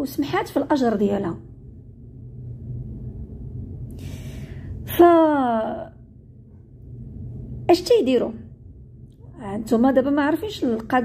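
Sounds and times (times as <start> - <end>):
woman talking: 0.0 - 1.5, 4.8 - 6.0, 7.7 - 8.5, 9.2 - 11.0
low hum: 0.0 - 11.0
woman drawing breath: 3.9 - 4.8.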